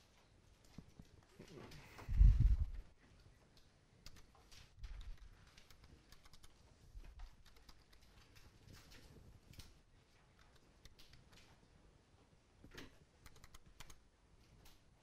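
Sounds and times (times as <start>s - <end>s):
soft low thumps: 2.0s - 2.8s
keyboard typing clicks: 4.0s - 4.3s, 5.0s - 6.6s, 7.2s - 8.1s, 12.8s - 14.0s.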